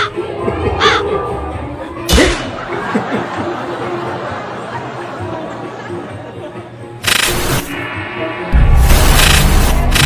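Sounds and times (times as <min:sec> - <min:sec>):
steady background din: 0:00.0 - 0:10.0.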